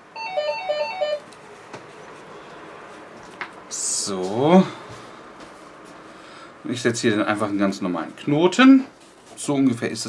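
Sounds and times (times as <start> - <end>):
phone ringtone melody: 0.1 - 1.2.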